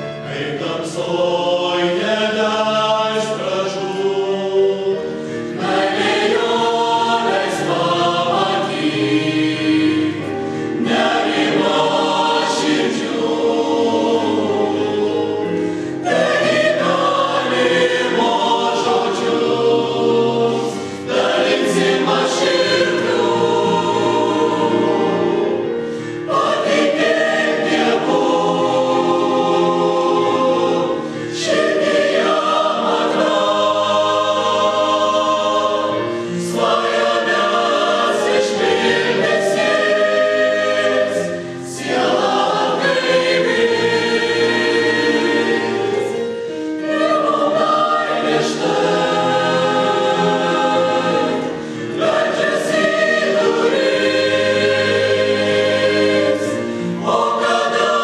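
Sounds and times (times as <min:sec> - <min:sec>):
mixed choir singing a hymn: 0:00.0 - 0:58.0.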